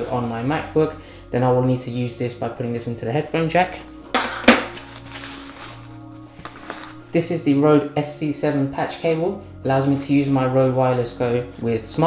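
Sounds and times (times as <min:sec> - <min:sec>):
soft background music: 0:00.0 - 0:12.0
cable knocking on wooden table: 0:04.2 - 0:04.7.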